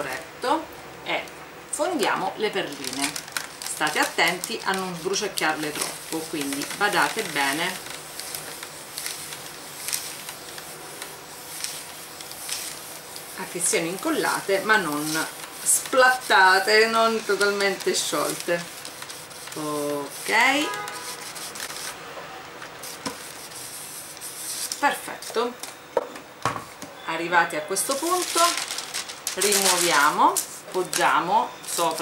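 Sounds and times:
iron sliding over paper: 2.8 - 22.0, 22.8 - 25.2, 27.8 - 32.0.

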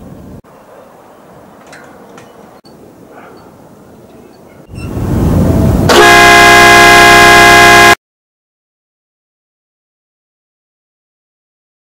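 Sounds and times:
low rumble: 4.8 - 5.9
boat air horn blast: 5.7 - 8.0.

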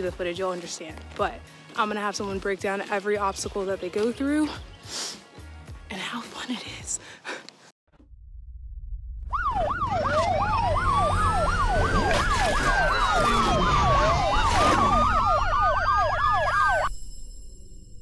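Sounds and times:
deep rumble: 7.9 - 16.1
electronic siren yelp: 9.2 - 16.9
siren wail: 9.2 - 16.9.

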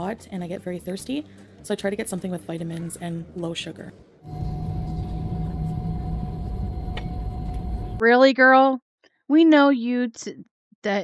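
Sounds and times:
faint steady hum: 4.2 - 8.0
airliner cabin rumble: 4.3 - 8.0.

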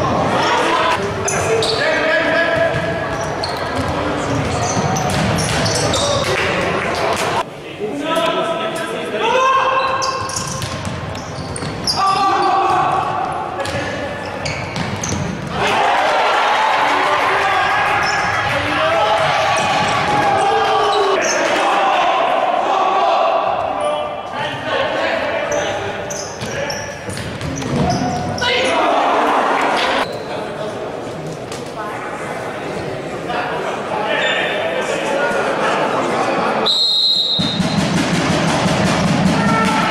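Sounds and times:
players and spectators shouting: 0.0 - 3.4, 11.8 - 14.0, 15.5 - 26.0, 27.8 - 30.1, 38.4 - 39.9.

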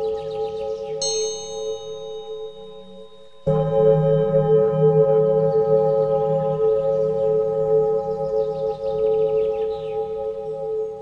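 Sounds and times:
droning chord: 0.0 - 11.0
metallic bell strike: 1.0 - 7.2.

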